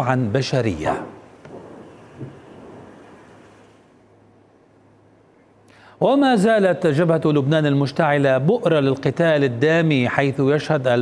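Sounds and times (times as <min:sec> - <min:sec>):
wind: 0:00.0 - 0:11.0
distant shelling rumble: 0:01.0 - 0:03.9.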